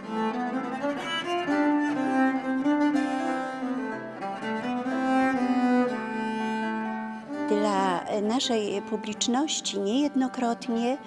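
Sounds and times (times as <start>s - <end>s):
baroque bowed string music: 0.0s - 11.0s.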